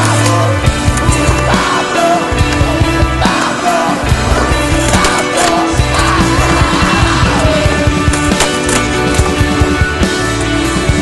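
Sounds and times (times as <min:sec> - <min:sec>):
loud rock music: 0:00.0 - 0:11.0
steady drum beat: 0:00.6 - 0:11.0.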